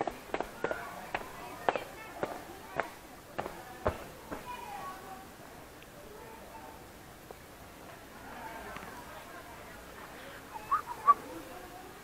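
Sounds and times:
footsteps on a paved path: 0.0 - 4.6.

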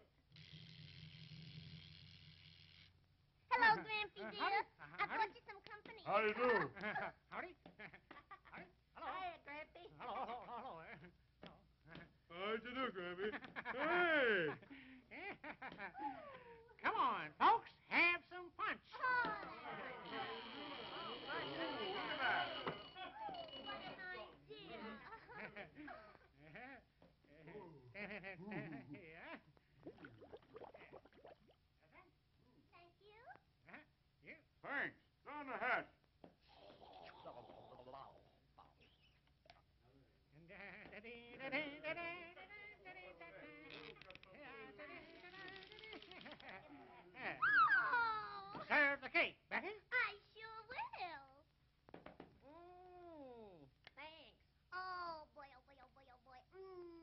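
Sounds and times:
cartoon character voice: 3.5 - 6.7.

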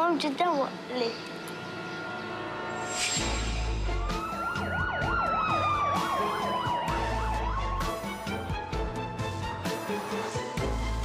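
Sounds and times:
fast warbling emergency siren: 3.9 - 8.5.

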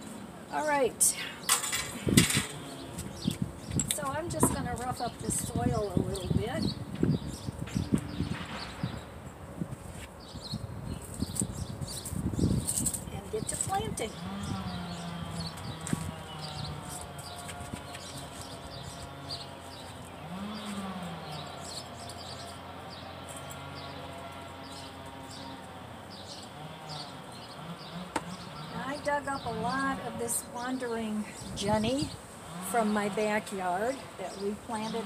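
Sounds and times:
small engine running: 14.0 - 29.0.

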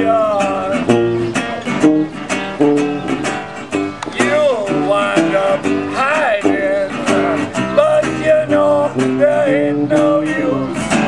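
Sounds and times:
strummed acoustic guitar: 0.0 - 11.0
man's voice: 4.1 - 10.8.

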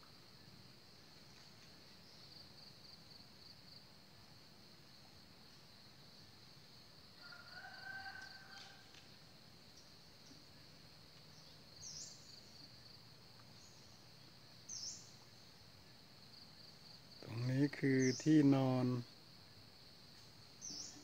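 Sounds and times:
insects chirping: 0.0 - 21.0
bird calls: 20.6 - 21.0.

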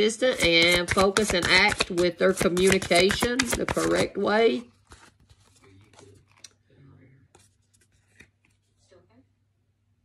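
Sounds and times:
cards clicking and rubbing: 0.2 - 4.2, 4.8 - 6.6.

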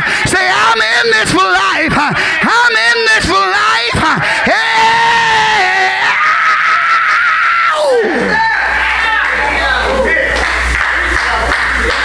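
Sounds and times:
preacher screaming into microphone: 0.0 - 8.8.

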